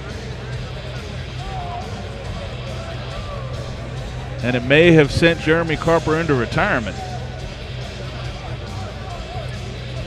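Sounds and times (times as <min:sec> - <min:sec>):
crowd murmur: 0:00.0 - 0:10.0
music playing in hall: 0:00.0 - 0:10.0.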